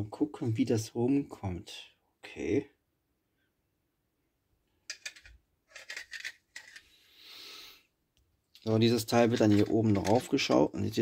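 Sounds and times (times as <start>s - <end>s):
plastic parts clicking: 4.9s - 6.9s, 9.2s - 10.7s
plastic rubbing: 4.9s - 7.0s, 9.0s - 10.7s.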